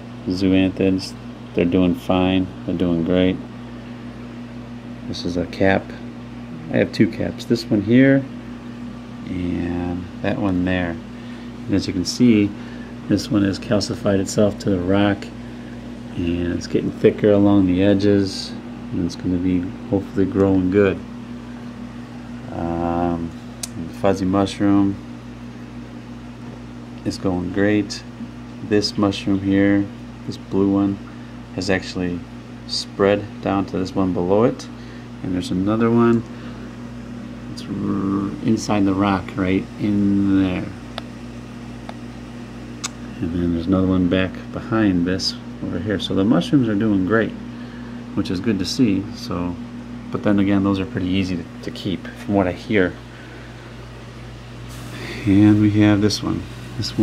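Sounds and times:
aquarium equipment humming: 0.0 - 57.0
hiss of moving water: 54.7 - 55.6.

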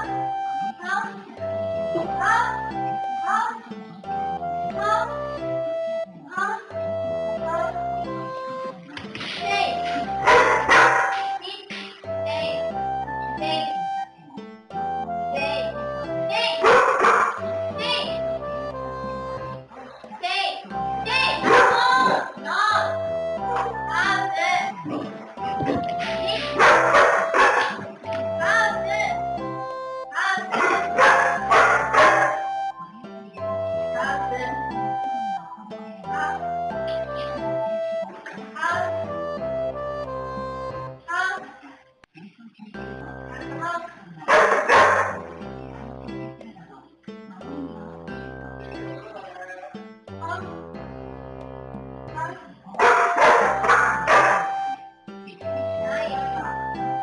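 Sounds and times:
background music: 0.0 - 57.0
puppy barking: 10.2 - 11.3, 16.5 - 17.5, 21.4 - 22.0, 26.3 - 27.9, 30.4 - 32.5, 44.3 - 45.3, 52.8 - 54.6.

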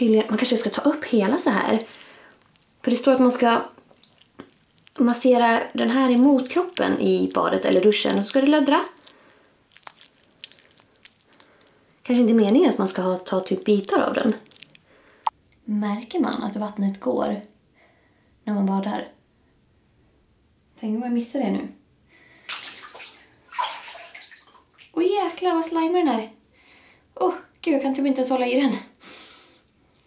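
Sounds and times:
bathwater sloshing and splashing: 0.0 - 15.3, 22.5 - 25.4
jelly soap squelching and clicking: 0.3 - 15.4.

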